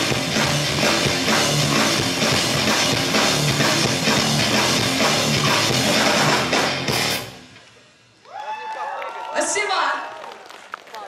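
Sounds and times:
rock band playing: 0.0s - 7.6s.

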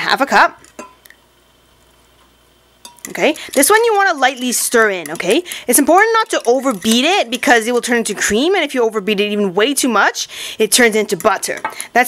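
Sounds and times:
glass clink: 0.8s - 1.0s, 2.8s - 3.1s.

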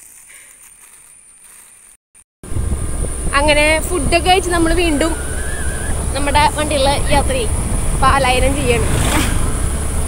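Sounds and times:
wind rumble on microphone: 2.4s - 10.0s.

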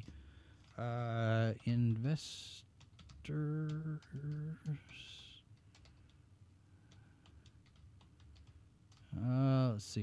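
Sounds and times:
faint keyboard typing: 0.0s - 9.4s.

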